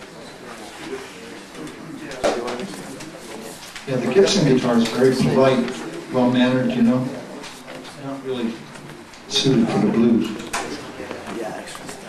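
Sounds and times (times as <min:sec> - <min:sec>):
low murmur of voices: 0:00.0 - 0:12.0.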